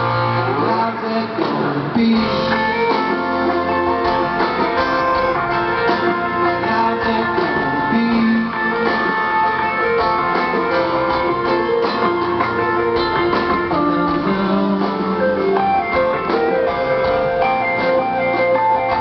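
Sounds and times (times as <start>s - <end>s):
bass guitar: 0.0s - 19.0s
drums: 0.0s - 19.0s
strummed guitars: 0.0s - 19.0s.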